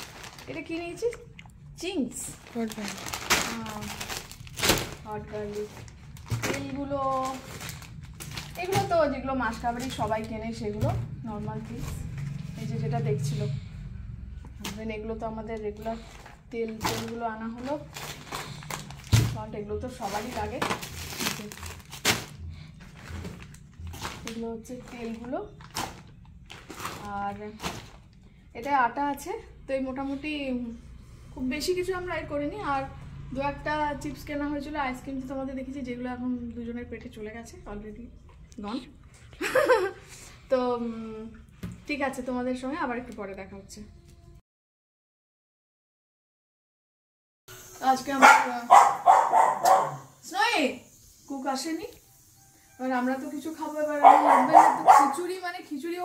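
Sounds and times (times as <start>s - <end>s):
plastic packets crinkling: 0.0s - 10.4s, 15.7s - 28.4s
dog barking: 48.2s - 50.2s, 54.0s - 55.3s.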